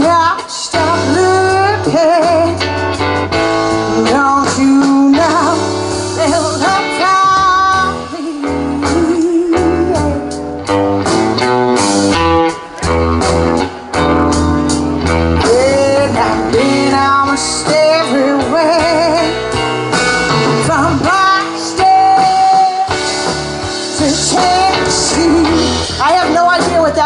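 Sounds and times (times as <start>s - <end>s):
woman singing: 0.0s - 2.8s, 3.8s - 10.4s, 15.4s - 19.5s, 20.4s - 23.1s, 23.8s - 27.0s
bass guitar: 0.0s - 27.0s
drums: 0.0s - 27.0s
electric guitar: 0.0s - 27.0s.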